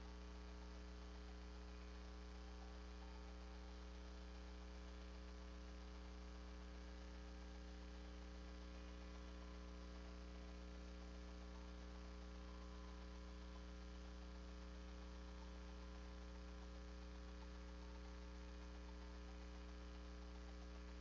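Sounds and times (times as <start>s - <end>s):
electrical mains hum: 0.0s - 21.0s.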